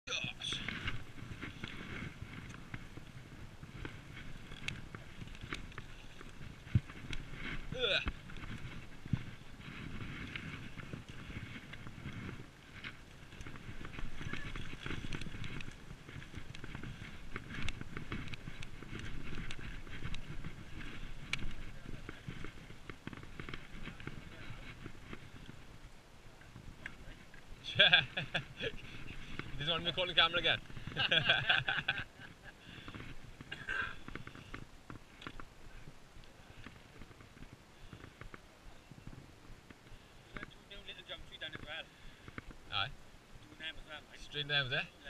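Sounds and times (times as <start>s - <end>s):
bike tyres rumbling over dirt: 0.1s - 45.0s
bike rattling over bumps: 0.4s - 43.0s.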